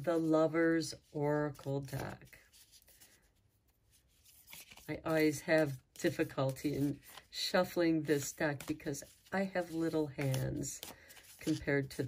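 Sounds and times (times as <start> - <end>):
cards rustling in hands: 1.5 - 12.0.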